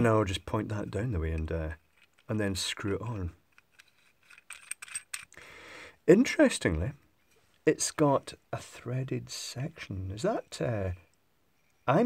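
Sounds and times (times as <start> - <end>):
small metal clicks and scrapes: 0.8 - 5.4.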